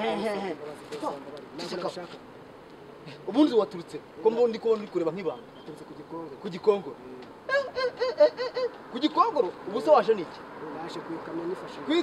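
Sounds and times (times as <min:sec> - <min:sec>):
man speaking: 0:08.9 - 0:12.0.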